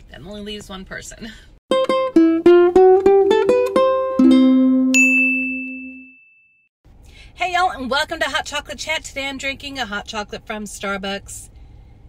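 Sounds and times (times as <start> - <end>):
plucked ukulele jingle: 1.7 - 6.1
bright high ding: 4.9 - 6.6.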